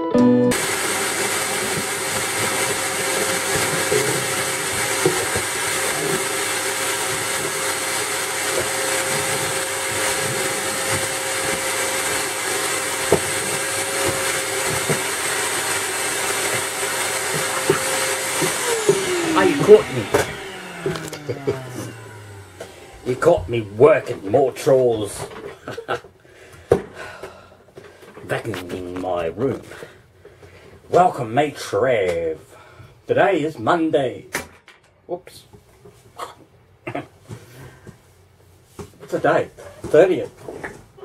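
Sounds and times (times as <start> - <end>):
vacuum cleaner running: 0.0 - 25.8
vacuum motor winding down: 0.5 - 25.1.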